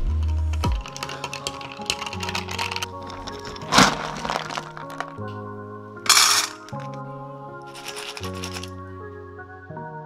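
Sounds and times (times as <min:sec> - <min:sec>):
dry kibble poured into metal bowl: 0:00.0 - 0:05.3, 0:06.1 - 0:07.0, 0:07.7 - 0:08.7
background music: 0:00.0 - 0:10.0.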